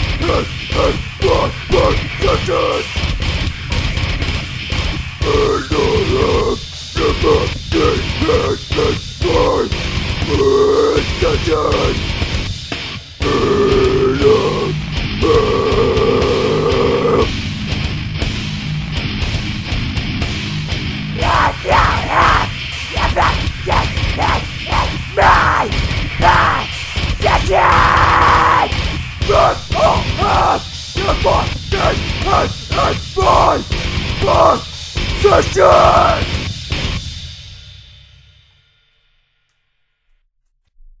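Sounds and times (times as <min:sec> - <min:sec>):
screamed metal vocals: 0:00.0 - 0:04.1, 0:04.7 - 0:12.3, 0:13.2 - 0:17.4, 0:21.0 - 0:36.6
heavy metal backing track: 0:00.0 - 0:38.5.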